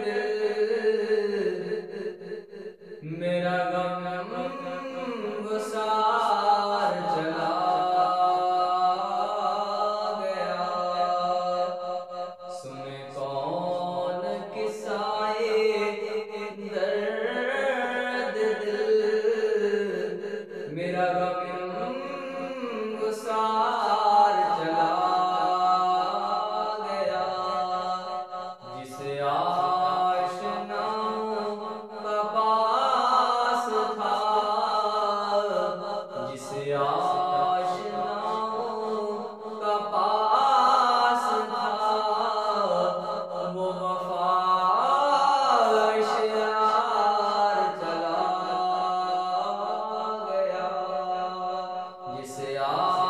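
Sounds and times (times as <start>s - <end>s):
man singing slow devotional melody: 0.0s - 53.0s.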